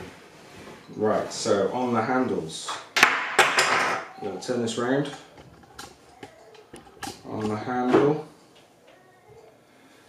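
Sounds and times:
plastic parts clicking and knocking: 5.0 - 8.7.

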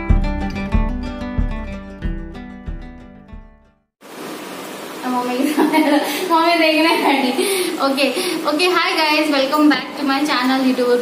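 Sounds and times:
woman laughing: 5.3 - 8.4.

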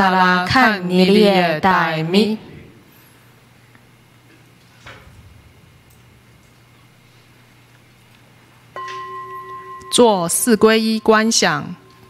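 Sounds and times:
metal bowl bell ringing: 8.8 - 12.0.

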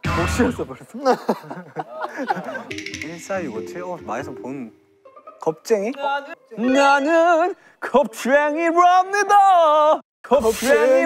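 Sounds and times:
people talking and chuckling: 1.0 - 2.8.

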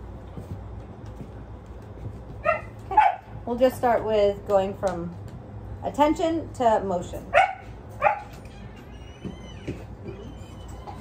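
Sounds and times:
dog whining: 8.0 - 11.0.

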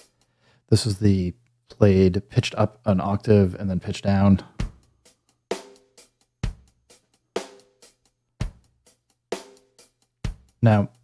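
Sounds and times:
sparse drum loop: 0.0 - 0.3, 2.2 - 11.0.

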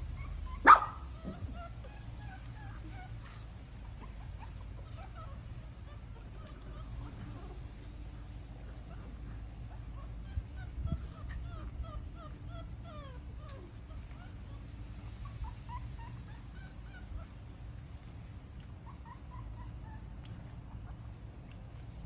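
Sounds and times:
puppies squeaking and whimpering: 0.0 - 7.6, 8.6 - 21.2
steady low hum: 0.0 - 22.0.

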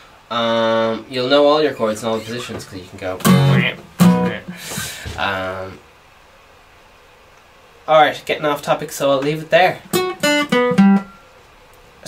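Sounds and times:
acoustic guitar strummed chords: 3.2 - 4.9, 9.8 - 11.3.

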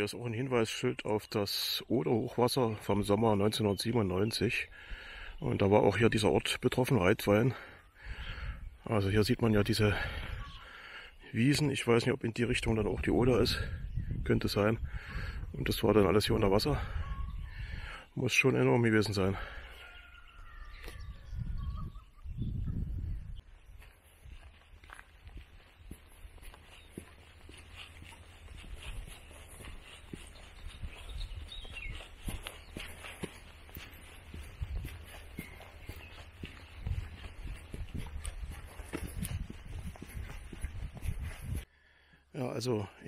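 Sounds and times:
wind buffeting microphone: 8.0 - 8.8, 12.6 - 18.0, 20.3 - 41.7
bird calling: 9.9 - 11.4, 16.4 - 41.4
footsteps on dirt track: 23.4 - 41.7.

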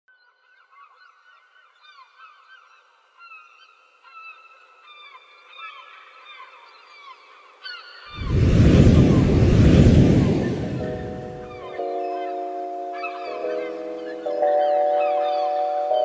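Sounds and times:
flock of birds calling: 11.4 - 16.0.

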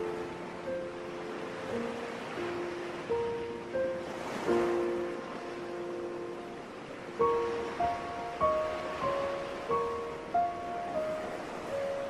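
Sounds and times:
calm instrumental melody: 0.0 - 12.0
ocean surf: 0.0 - 12.0.

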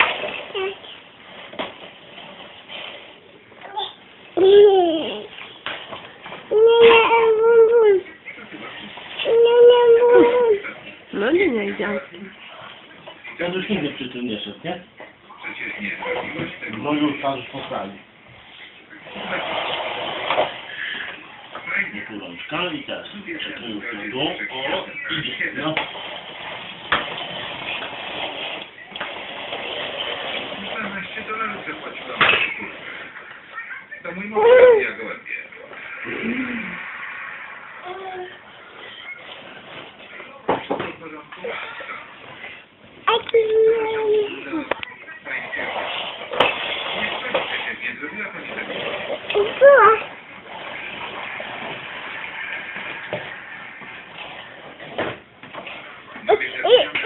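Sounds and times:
plastic wheels rolling on wood: 25.3 - 32.9.

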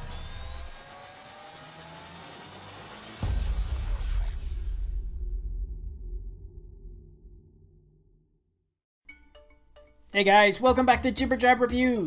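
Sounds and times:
whooshing riser with gliding tones: 0.2 - 4.8
low rumble: 3.2 - 8.5.

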